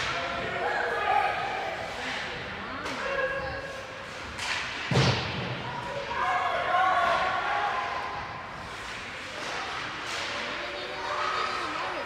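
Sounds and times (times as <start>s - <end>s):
voices from stands: 0.0s - 12.0s
hockey sticks and puck cracking: 1.9s - 6.2s, 7.1s - 11.3s.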